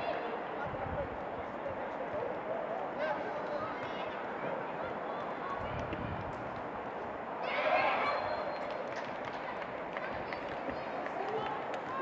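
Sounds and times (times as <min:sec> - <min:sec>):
distant shouting players and spectators: 0:00.0 - 0:12.0
loud shout: 0:07.4 - 0:08.6.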